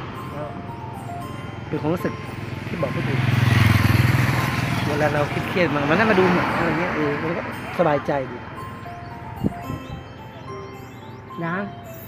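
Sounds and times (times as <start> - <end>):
motorcycle engine passing by: 2.4 - 7.6.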